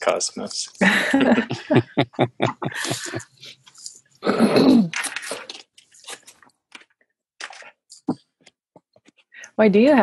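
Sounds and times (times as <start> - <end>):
breathy laughs: 0.8 - 3.3
person clearing throat: 4.2 - 5.4.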